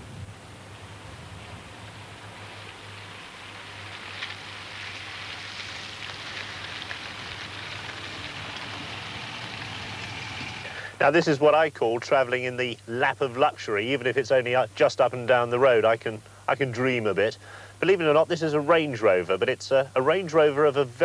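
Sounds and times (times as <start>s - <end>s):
car road and engine noise: 0.0s - 11.4s.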